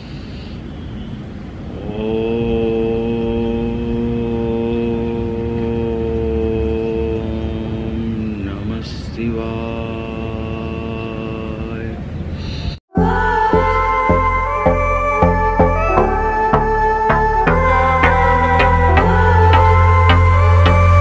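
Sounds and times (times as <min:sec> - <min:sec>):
man chanting om: 0:01.7 - 0:12.1.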